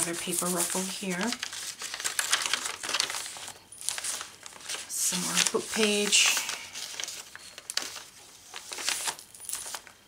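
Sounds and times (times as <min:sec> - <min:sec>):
paper crinkling and rustling: 0:00.0 - 0:10.0.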